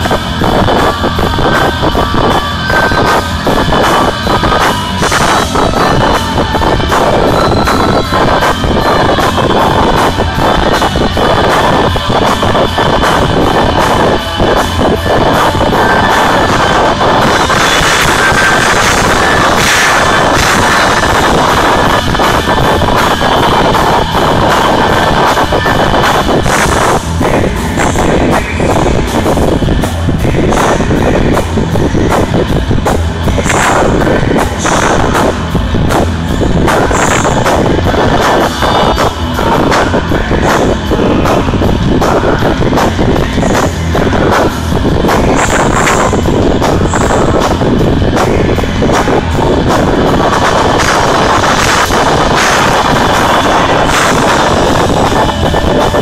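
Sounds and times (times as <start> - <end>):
distorted live rock band: 0.0 - 56.0.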